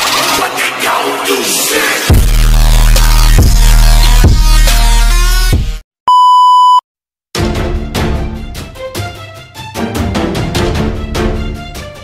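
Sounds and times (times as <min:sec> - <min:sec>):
electronic music: 0:00.0 - 0:05.6
high electronic beep: 0:06.1 - 0:06.8.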